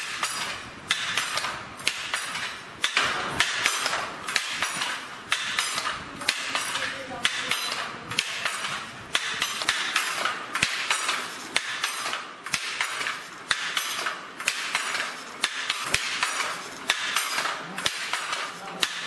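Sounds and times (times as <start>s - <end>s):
loom wooden clacks: 0.0s - 19.0s.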